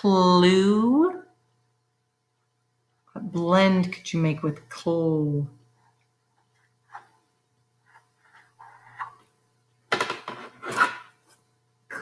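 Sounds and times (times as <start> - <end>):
marker writing on whiteboard: 6.6 - 9.3.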